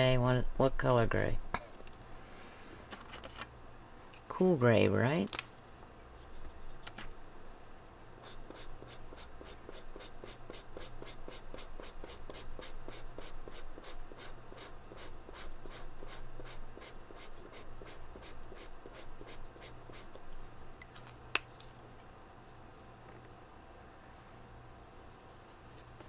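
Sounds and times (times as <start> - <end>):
marker scratching on paper: 8.2 - 20.2.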